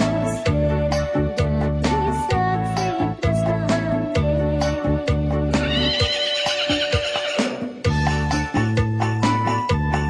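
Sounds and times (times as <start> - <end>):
pop band with bass and drums: 0.0 - 10.0.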